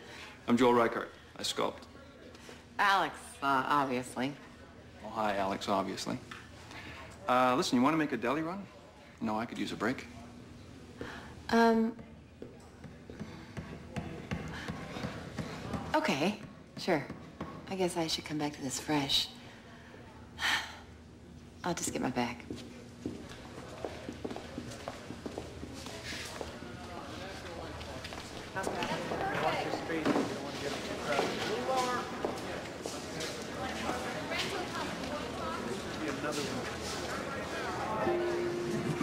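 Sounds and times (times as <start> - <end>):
indistinct voices talking: 31.5 - 39.0.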